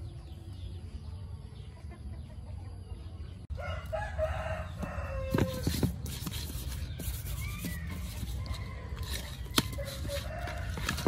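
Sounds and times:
chickens clucking: 0:01.3 - 0:05.6
rooster crowing: 0:03.5 - 0:05.8.

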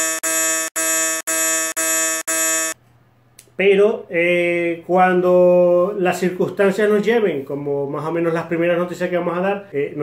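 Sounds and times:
wrong answer buzzer: 0:00.0 - 0:02.8.

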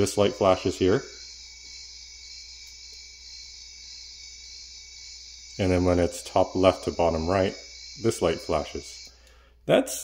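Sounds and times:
high-pitched electronic buzz: 0:00.0 - 0:09.2.

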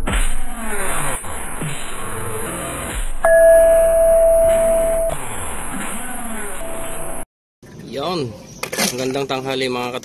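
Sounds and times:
intro music: 0:03.3 - 0:05.4
long electronic beep: 0:03.3 - 0:05.4.

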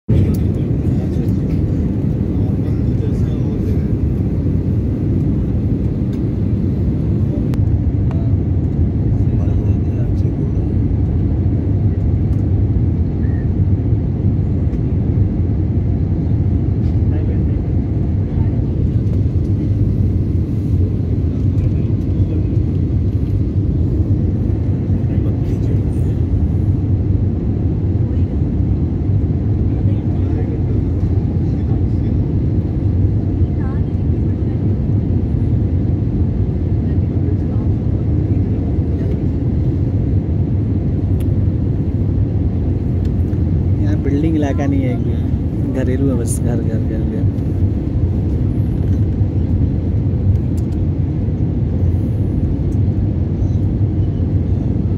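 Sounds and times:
airliner cabin drone: 0:00.1 - 0:54.9.

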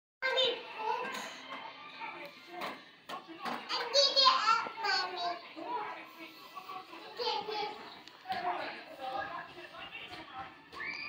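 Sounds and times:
toddler talking: 0:03.7 - 0:05.4.

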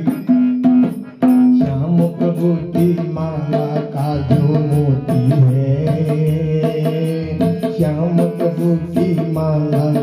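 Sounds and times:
harmonium melody: 0:00.0 - 0:10.0
tabla strokes: 0:00.0 - 0:10.0.

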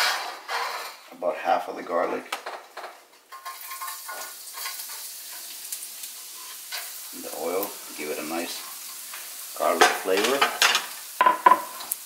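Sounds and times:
garlic sizzling in oil: 0:03.3 - 0:12.0.

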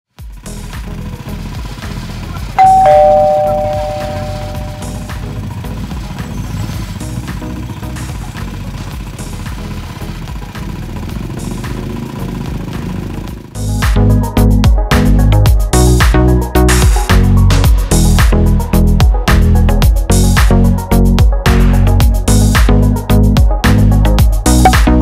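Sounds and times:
background music with beat: 0:00.2 - 0:11.8, 0:13.6 - 0:25.0
two-note ding-dong chime: 0:02.6 - 0:05.2.

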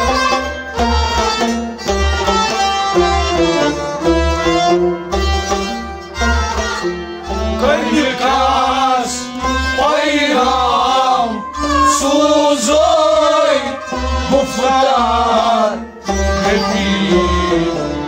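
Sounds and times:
stepped instrumental melody: 0:00.0 - 0:18.0
men singing: 0:07.6 - 0:18.0.

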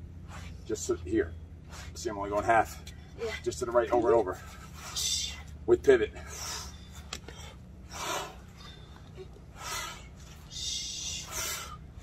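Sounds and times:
low background hum: 0:00.0 - 0:12.0
people exhaling breathily: 0:06.2 - 0:12.0.

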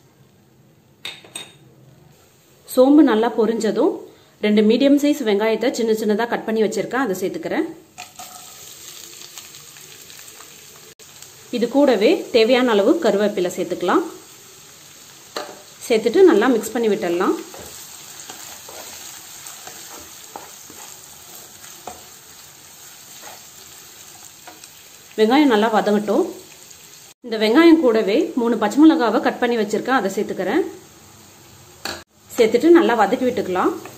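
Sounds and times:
onions sizzling in hot oil: 0:07.9 - 0:33.9
sharp crackle in oil: 0:08.0 - 0:11.4.

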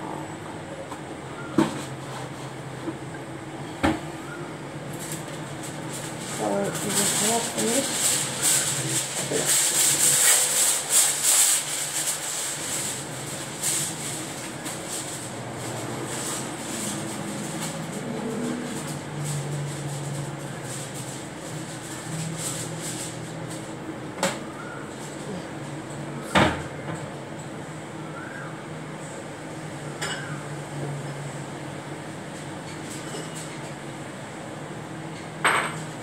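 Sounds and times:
aluminium foil crinkling: 0:04.8 - 0:23.9.

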